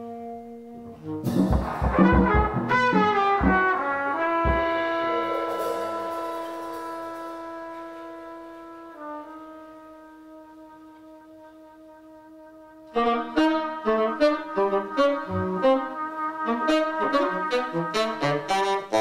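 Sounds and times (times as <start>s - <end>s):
long held horn note: 0.0s - 17.7s
drum hits: 1.2s - 8.0s.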